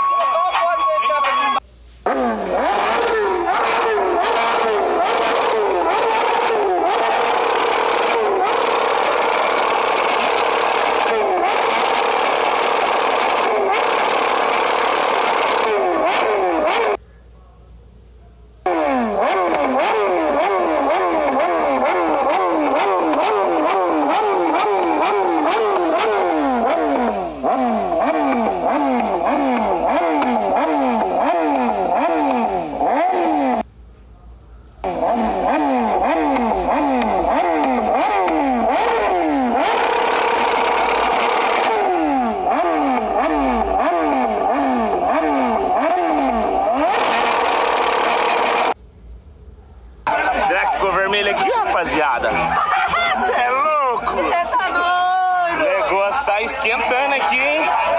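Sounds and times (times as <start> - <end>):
motorcycle engine revving: 2.0 - 17.0, 18.6 - 33.7, 34.8 - 48.8.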